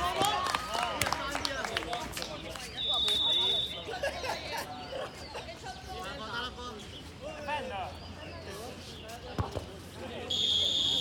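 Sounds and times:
voices: 0.0 - 11.0
whistle blast: 2.8 - 3.8, 10.3 - 11.0.

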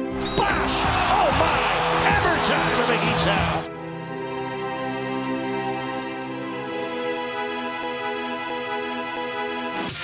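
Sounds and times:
background music: 0.0 - 10.0
arena crowd noise: 0.2 - 3.7.

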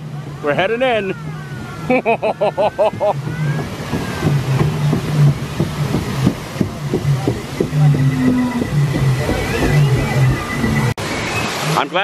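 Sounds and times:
rushing splashing water: 0.0 - 12.0.

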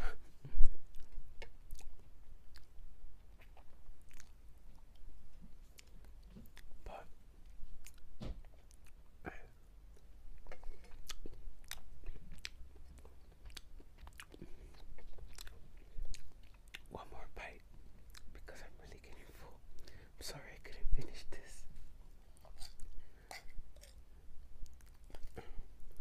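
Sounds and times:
close chewing: 0.8 - 6.7, 9.9 - 16.9, 18.0 - 18.4, 22.3 - 25.6
wet mouth clicks: 22.4 - 24.0.

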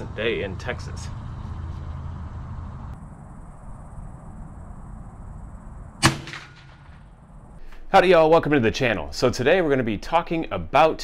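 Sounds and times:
low steady rumble: 0.0 - 7.7
rifle shot: 6.0 - 7.2.

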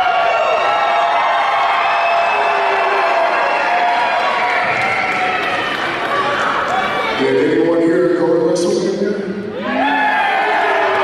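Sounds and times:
arena crowd cheering: 0.0 - 7.8, 9.5 - 11.0.

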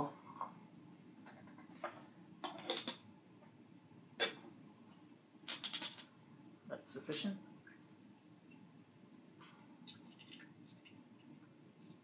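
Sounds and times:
teaware clinks and knocks: 5.5 - 6.1.

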